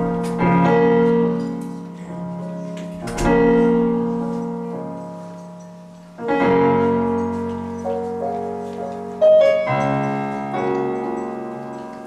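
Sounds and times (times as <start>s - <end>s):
electric piano chords: 0.0s - 12.0s.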